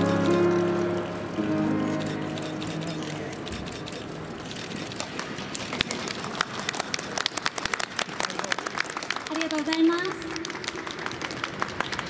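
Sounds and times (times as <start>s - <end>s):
audience clapping: 2.0s - 12.0s.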